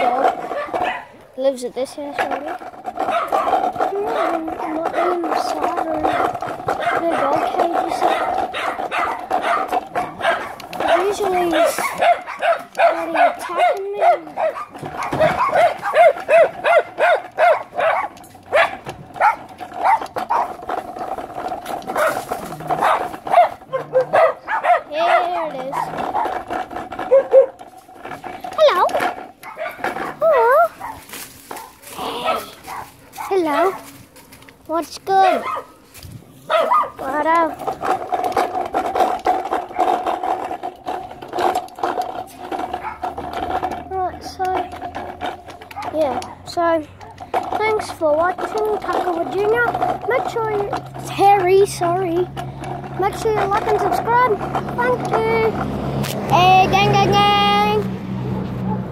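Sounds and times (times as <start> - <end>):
dog barking: 0.5 - 1.1, 3.0 - 5.3, 6.1 - 20.5, 21.9 - 26.3, 27.1 - 27.6, 29.4 - 29.8, 30.8 - 34.0, 35.2 - 35.8, 36.5 - 37.0, 42.8 - 43.1
dog whining: 8.0 - 20.6, 21.9 - 26.3, 27.0 - 27.6, 31.6 - 33.8, 42.8 - 43.1.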